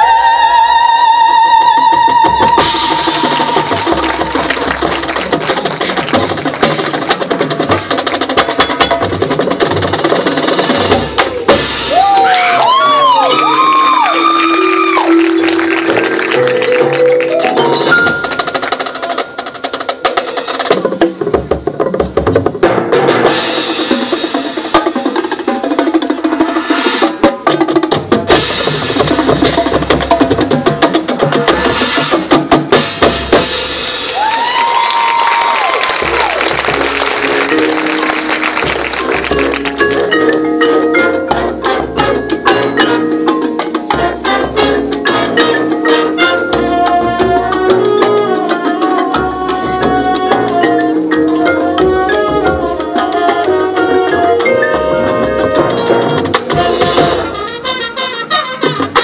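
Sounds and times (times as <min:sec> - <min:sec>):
marching band playing: 0:00.0 - 0:59.0
drums and percussion hitting: 0:01.5 - 0:59.0.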